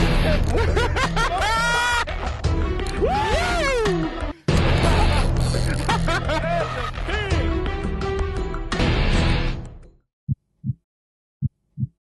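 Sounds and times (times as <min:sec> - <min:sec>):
heartbeat thumps: 0:10.3 - 0:10.8, 0:11.4 - 0:12.0.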